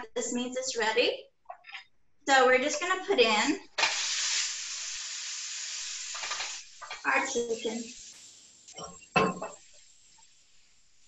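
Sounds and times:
chicken sizzling in a frying pan: 3.8 - 11.0.

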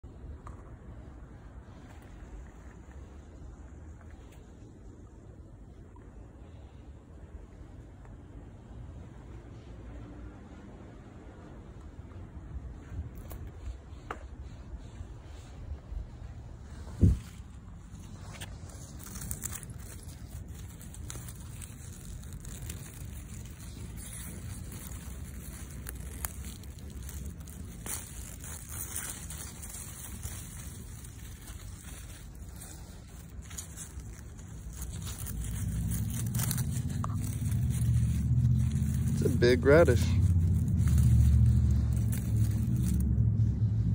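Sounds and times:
leaves rustling and crackling: 0.0 - 43.9
low rumble: 0.0 - 43.9.

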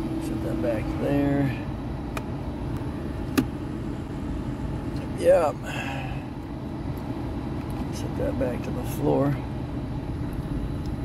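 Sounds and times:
car engine idling: 0.0 - 11.0
heater blower running: 0.0 - 11.0.

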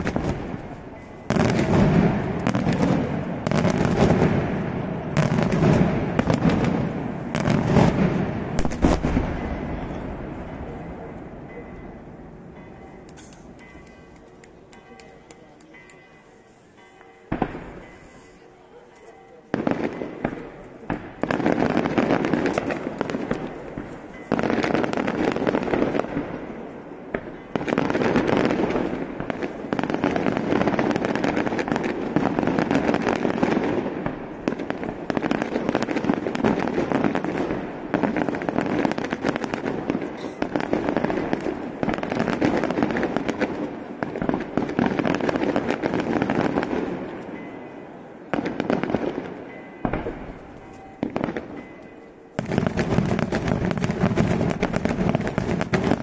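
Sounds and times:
firecracker bangs and crackling: 0.0 - 10.4, 19.5 - 47.5, 48.3 - 51.7, 52.4 - 56.0.

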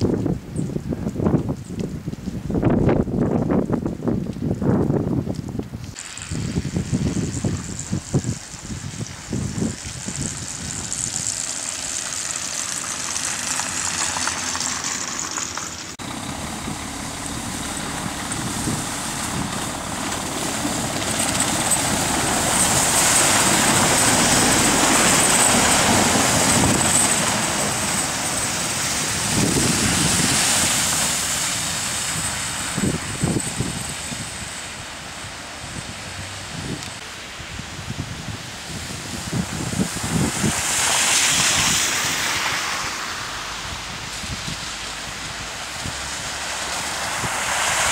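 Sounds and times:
light traffic noise: 5.3 - 47.9
tyres hissing through slush: 6.0 - 36.0, 38.6 - 47.9
truck engine running: 6.0 - 37.0.

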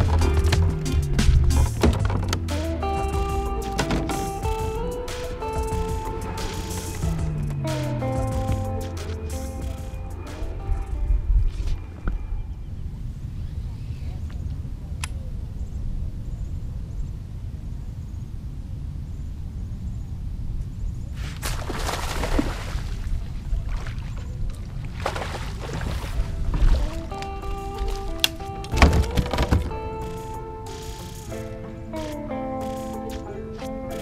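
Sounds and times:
instrumental music: 0.0 - 11.8, 26.4 - 34.0
wind rumbling on microphone: 4.3 - 33.1
fish splashing in water: 21.3 - 27.2.

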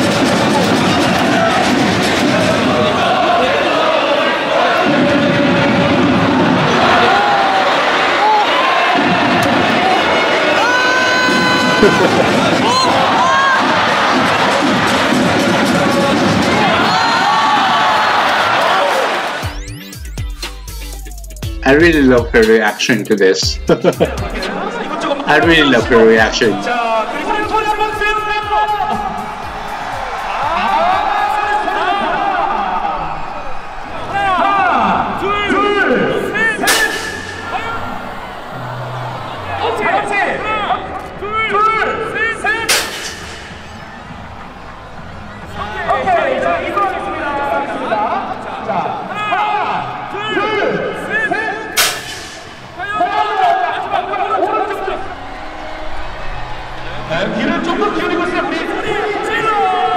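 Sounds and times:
stadium crowd cheering and shouting: 0.0 - 59.9.

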